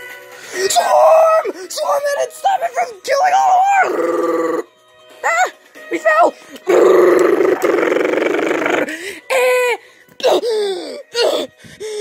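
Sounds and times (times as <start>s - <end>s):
person making rolled brrr sound: 6.7s - 9.0s.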